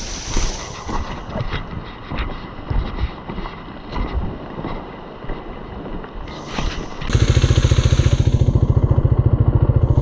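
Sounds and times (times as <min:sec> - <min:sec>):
steady hiss: 0:00.0 - 0:01.4
wind buffeting microphone: 0:00.0 - 0:10.0.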